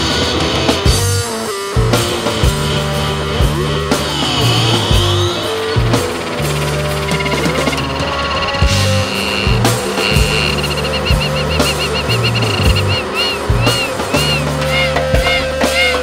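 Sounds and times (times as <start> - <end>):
bass guitar: 0.0 - 16.0
drums: 0.0 - 16.0
high wavering tone: 3.6 - 16.0.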